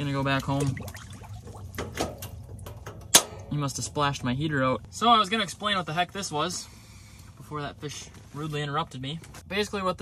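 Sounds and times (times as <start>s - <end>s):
water splashing: 0.0s - 2.9s.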